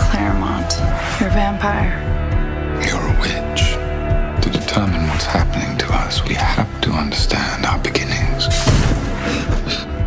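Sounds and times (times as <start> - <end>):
dark trailer score: 0.0 - 10.0.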